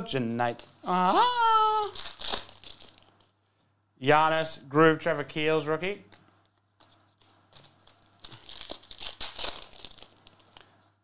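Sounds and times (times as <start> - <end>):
cards and foil wrappers crinkling: 0.4 - 3.4, 7.1 - 11.0.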